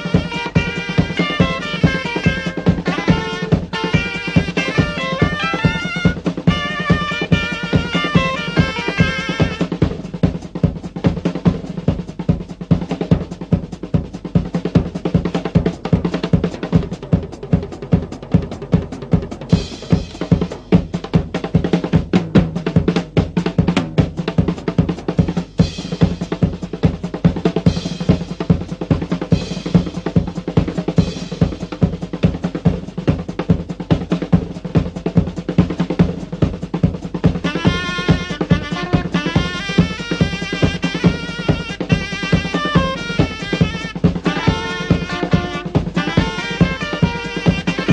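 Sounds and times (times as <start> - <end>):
drum kit solo: 0.0 - 47.9.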